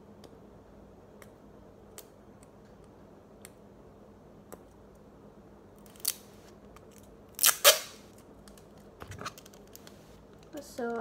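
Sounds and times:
sticky tape ripping: 0:05.8 - 0:06.3, 0:07.3 - 0:08.1.

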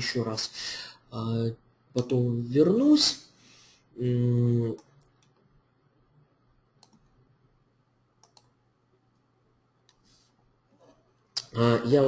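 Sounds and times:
faint computer clicks: 0:06.8 - 0:07.2, 0:08.2 - 0:08.6.

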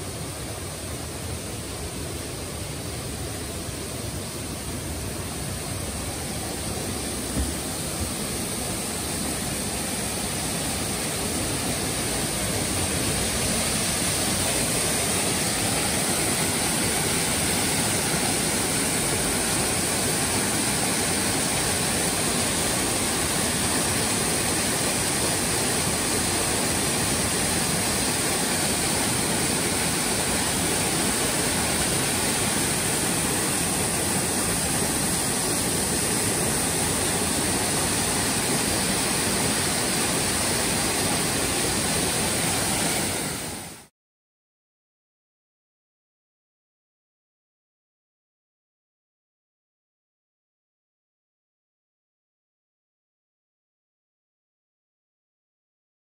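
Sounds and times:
waterfall rushing into a pool: 0:00.0 - 0:43.9.

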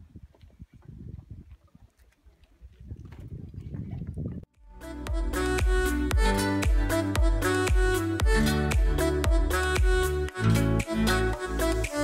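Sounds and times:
wind buffeting microphone: 0:00.0 - 0:04.5.

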